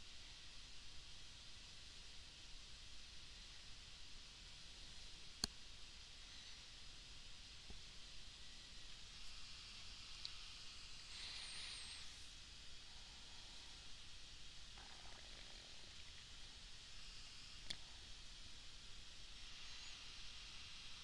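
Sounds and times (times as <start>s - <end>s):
faint click: 10.2s - 10.4s.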